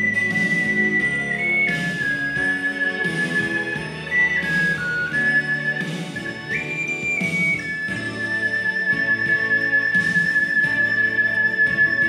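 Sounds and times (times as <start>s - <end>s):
instrumental backing track: 0.0s - 12.0s
ocarina melody: 0.0s - 12.0s.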